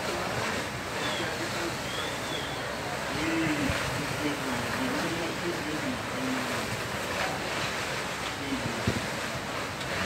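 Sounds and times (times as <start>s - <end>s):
faint distant voices: 0.0s - 9.6s
fire rushing noise: 0.0s - 10.0s.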